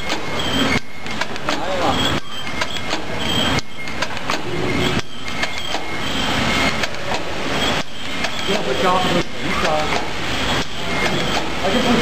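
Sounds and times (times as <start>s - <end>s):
rapid repeated machine clicks: 0.0s - 12.0s.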